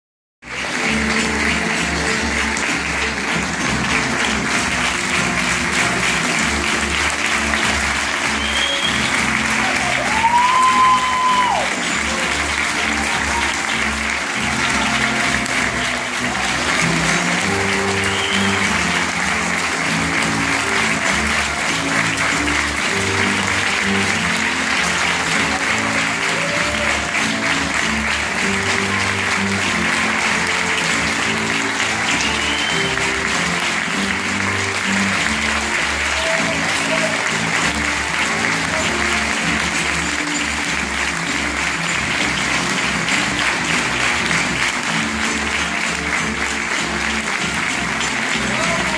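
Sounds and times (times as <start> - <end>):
audience applauding: 0.4 - 48.9
music: 0.4 - 48.9
high-pitched crowd cry: 9.6 - 11.8.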